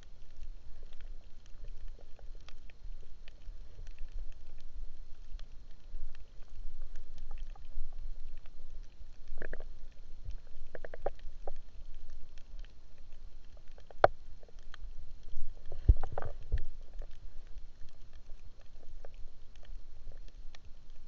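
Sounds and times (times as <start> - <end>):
faint scattered clicks: 0.0 - 21.0
low underwater rumble: 0.0 - 21.0.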